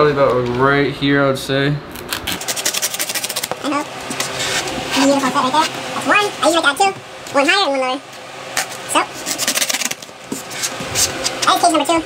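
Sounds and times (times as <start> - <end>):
knife sawing through foam: 2.3 - 3.5, 9.1 - 11.2.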